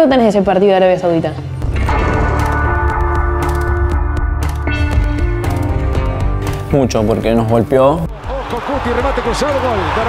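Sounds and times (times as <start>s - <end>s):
stadium crowd noise: 8.2s - 10.0s.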